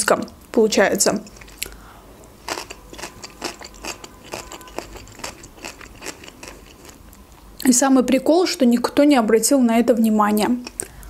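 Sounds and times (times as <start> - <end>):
person chewing food: 1.3 - 1.8, 2.4 - 7.2.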